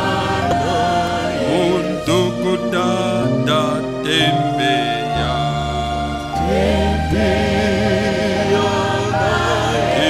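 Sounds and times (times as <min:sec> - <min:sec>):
voices singing slow worship song: 0:00.0 - 0:10.0.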